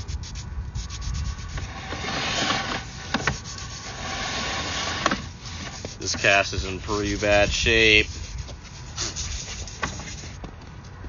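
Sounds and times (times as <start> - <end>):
cable rubbing and scraping in drain: 0.8 - 10.4.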